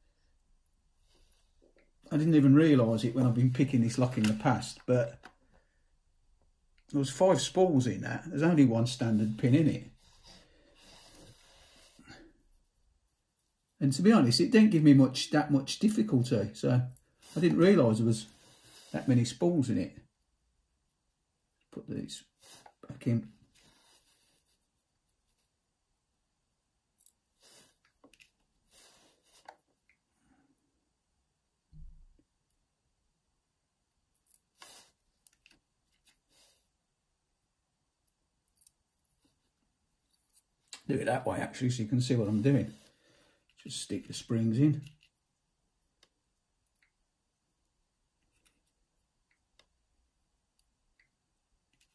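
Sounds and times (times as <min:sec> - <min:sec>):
small clicks and rustles of lock pins: 0:35.2 - 0:36.2, 0:38.0 - 0:39.1.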